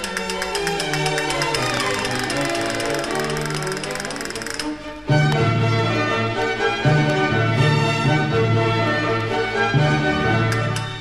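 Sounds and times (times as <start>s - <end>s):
castanets rattling rolls: 0.0s - 4.7s
baroque chamber orchestra: 0.0s - 11.0s.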